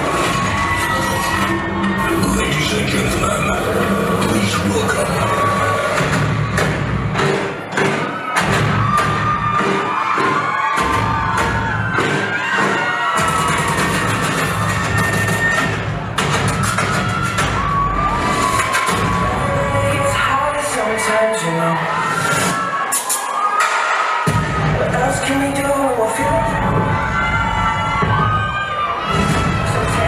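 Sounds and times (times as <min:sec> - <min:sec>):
audience cheering and shouting: 0:00.0 - 0:30.0
loud dance music: 0:00.0 - 0:30.0.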